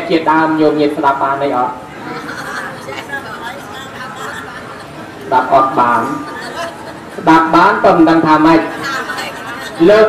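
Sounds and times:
chatter of several voices: 0:01.8 - 0:10.0.

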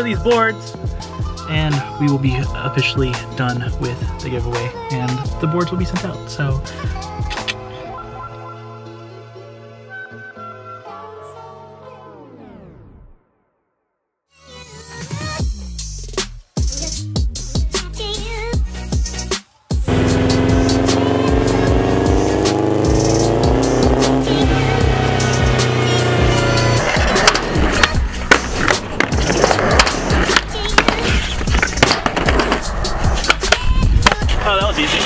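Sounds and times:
background music: 0:00.0 - 0:12.9, 0:14.6 - 0:35.0
skateboard wheels rolling on concrete: 0:25.3 - 0:35.0
skateboard clacks: 0:26.4 - 0:35.0.

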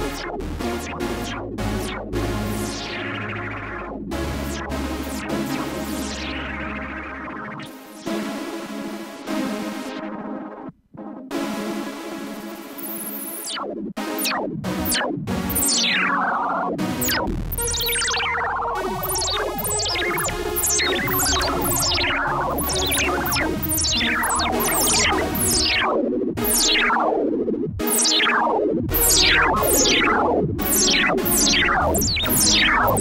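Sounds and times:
synthesizer notes and chords: 0:00.0 - 0:33.0.

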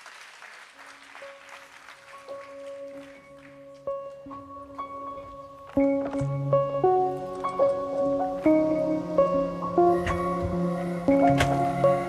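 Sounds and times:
audience applause: 0:00.0 - 0:03.8
soft sustained piano notes: 0:01.3 - 0:12.0.

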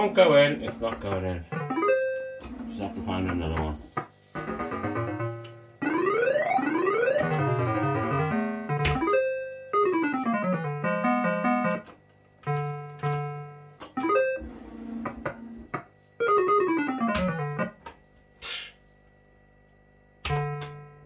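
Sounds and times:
fruit machine beeping notes: 0:01.5 - 0:02.5, 0:05.0 - 0:11.8, 0:12.5 - 0:14.4, 0:16.2 - 0:17.8.

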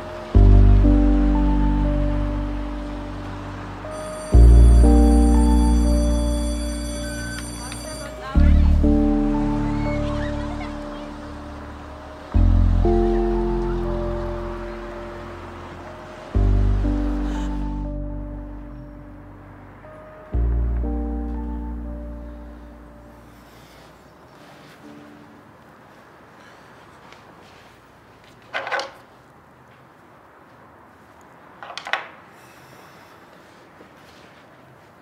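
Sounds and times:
held chord over deep bass: 0:00.0 - 0:24.0.

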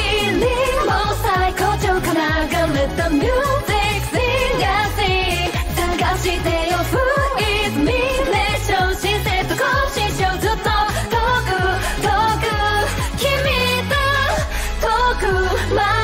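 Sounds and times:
woman singing: 0:00.0 - 0:16.0.

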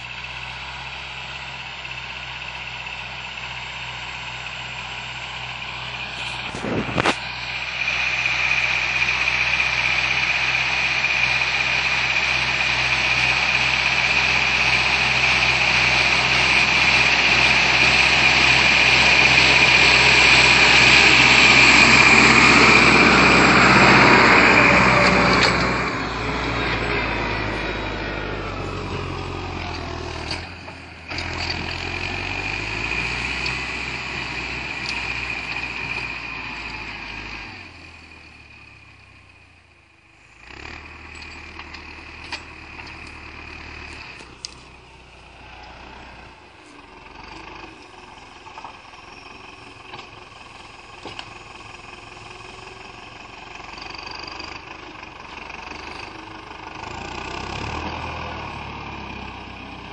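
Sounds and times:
tractor diesel engine under load: 0:00.0 - 0:59.9.

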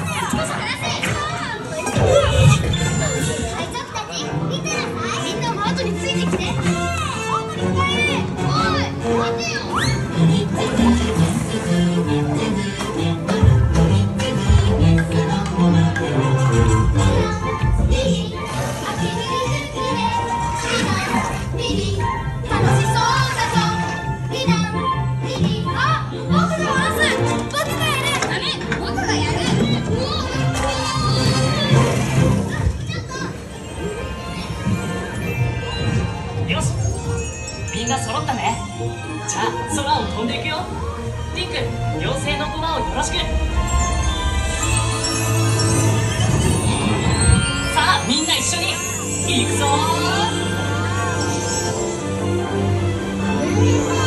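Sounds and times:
children's voices calling out: 0:00.0 - 0:11.2, 0:16.6 - 0:36.6
children shouting and whooping: 0:06.7 - 0:10.2
ride music: 0:10.4 - 0:30.6, 0:34.4 - 0:54.0.

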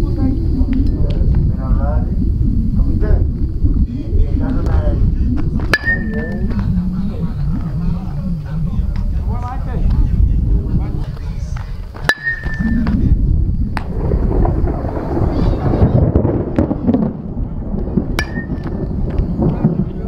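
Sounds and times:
wind on microphone: 0:00.0 - 0:20.0
baseball bat cracking ball: 0:05.6 - 0:06.5, 0:11.9 - 0:13.0, 0:18.2 - 0:18.8.

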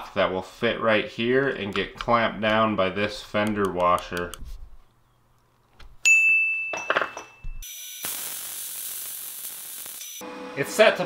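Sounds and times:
bright ding: 0:06.1 - 0:07.7
welding arc buzzing: 0:07.6 - 0:10.6.

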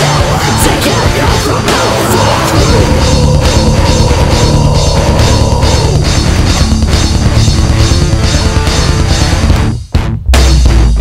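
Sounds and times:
drum kit beat: 0:00.0 - 0:11.0
heavy rock music: 0:00.0 - 0:11.0.

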